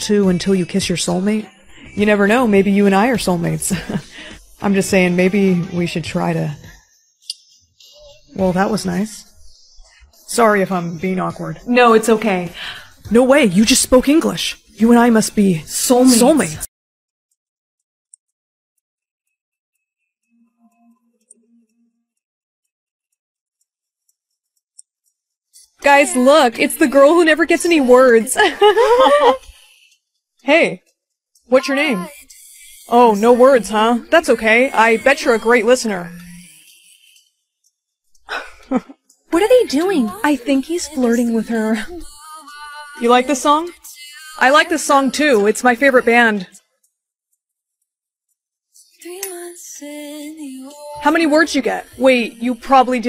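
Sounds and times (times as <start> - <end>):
woman singing: 0.0 - 6.7, 10.3 - 16.7, 25.7 - 29.6, 31.5 - 37.2, 39.4 - 46.5, 48.8 - 53.0.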